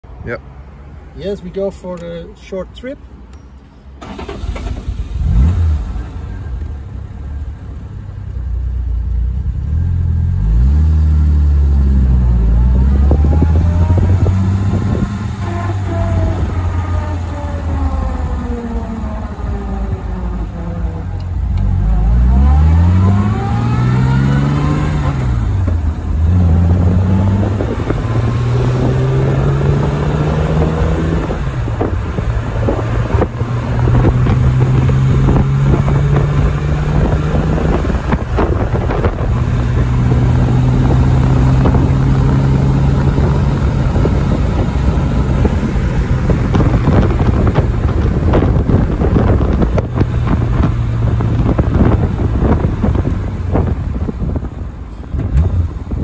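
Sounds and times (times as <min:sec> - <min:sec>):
car engine starting: 0:04.0 - 0:56.0
car accelerating through gears: 0:10.4 - 0:53.1.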